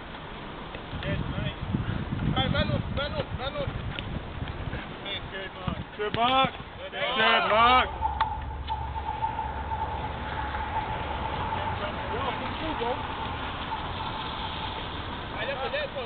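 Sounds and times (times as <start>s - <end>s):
low outdoor rumble: 6.8s - 16.0s
faint steady hum: 7.3s - 16.0s.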